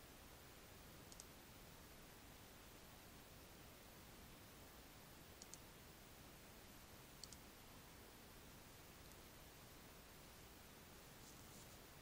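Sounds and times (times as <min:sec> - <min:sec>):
faint hiss: 0:00.0 - 0:12.0
computer mouse clicks: 0:01.0 - 0:01.4, 0:05.4 - 0:05.6, 0:07.2 - 0:07.5.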